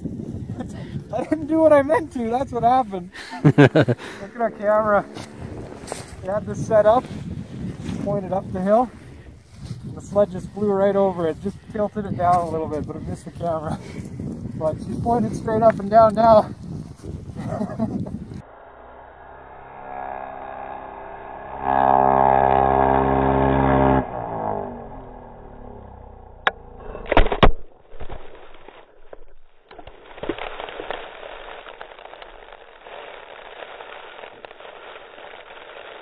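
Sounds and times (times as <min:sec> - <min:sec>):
snowmobile engine revving: 0:01.2 - 0:07.4, 0:18.4 - 0:26.8
steady hiss: 0:30.3 - 0:36.0.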